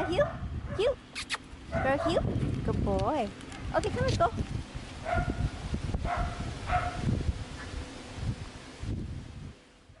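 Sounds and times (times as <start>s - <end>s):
dog barking: 0.0s - 0.9s, 1.7s - 2.2s, 5.0s - 7.1s.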